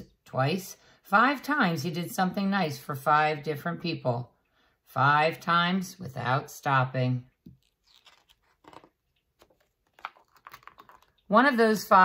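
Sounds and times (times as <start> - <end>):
paper page rustling: 7.5 - 11.2.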